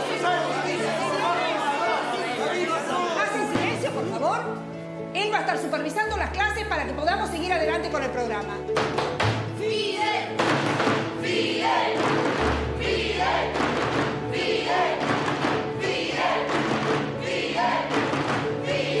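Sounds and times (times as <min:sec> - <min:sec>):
teenagers chanting in unison: 0:00.0 - 0:03.8, 0:09.6 - 0:10.4, 0:11.1 - 0:19.0
rhythmic clapping: 0:08.4 - 0:19.0
thumps on desks: 0:08.8 - 0:09.5, 0:10.4 - 0:11.2, 0:11.9 - 0:12.8, 0:13.5 - 0:14.3, 0:15.0 - 0:17.2, 0:17.8 - 0:18.7.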